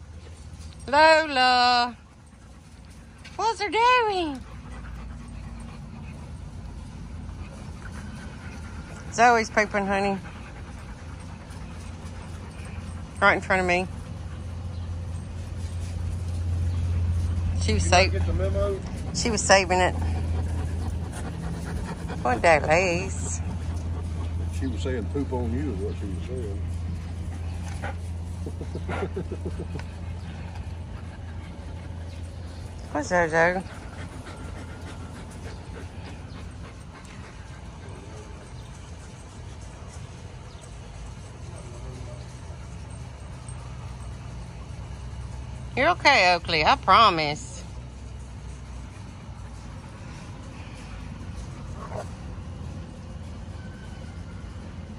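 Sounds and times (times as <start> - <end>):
dog panting: 0.0 - 53.2
low hum: 0.0 - 54.9.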